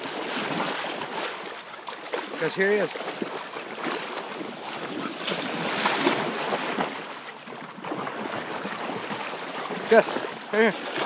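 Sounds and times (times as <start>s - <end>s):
dog splashing through water: 0.0s - 11.0s.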